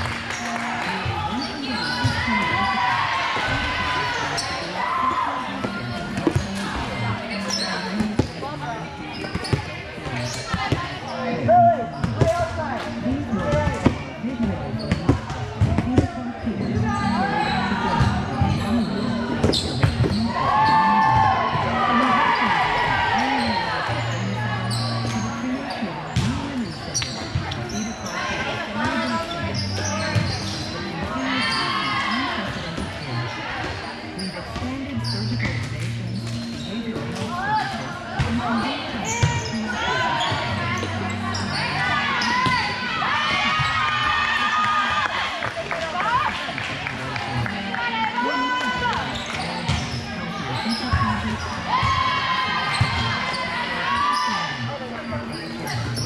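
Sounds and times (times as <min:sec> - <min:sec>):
players and spectators calling: 0:00.0 - 0:56.0.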